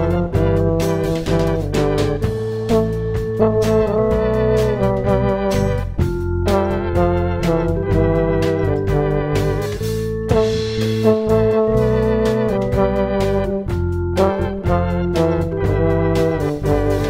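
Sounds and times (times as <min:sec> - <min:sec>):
drum kit beat: 0:00.0 - 0:17.0
electric bass: 0:00.0 - 0:17.0
organ chords: 0:00.0 - 0:17.0
tuba melody: 0:00.0 - 0:17.0.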